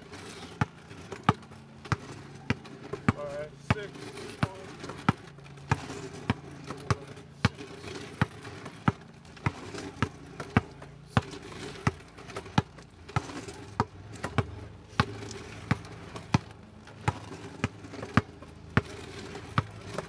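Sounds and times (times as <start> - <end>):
basketball bouncing on asphalt: 0.0 - 20.0.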